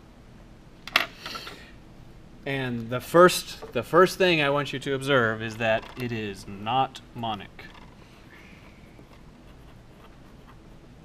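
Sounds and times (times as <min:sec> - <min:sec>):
pen writing on paper: 0:07.8 - 0:10.6.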